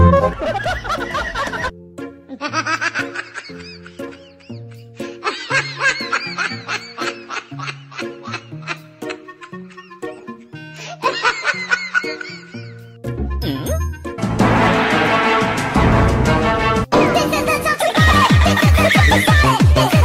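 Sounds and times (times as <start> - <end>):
comic music with bouncing bass: 0.0 - 10.4, 11.1 - 20.0
bursts of laughter: 17.0 - 20.0.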